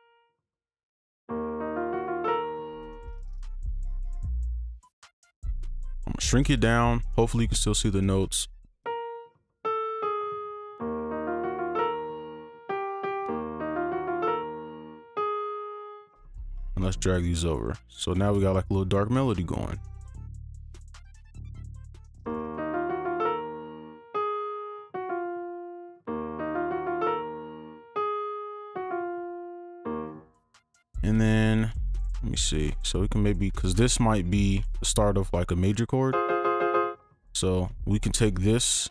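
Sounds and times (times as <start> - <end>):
slow dark piano melody: 1.3 - 3.2, 8.9 - 16.6, 22.3 - 30.4, 36.2 - 37.0.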